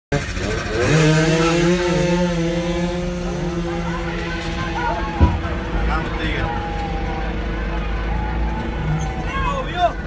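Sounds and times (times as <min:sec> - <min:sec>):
racing motorcycle engine revving: 0:00.1 - 0:09.2.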